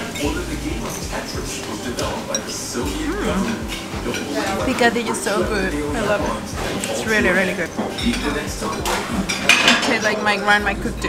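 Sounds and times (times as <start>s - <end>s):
restaurant clatter and chatter: 0.0s - 11.0s.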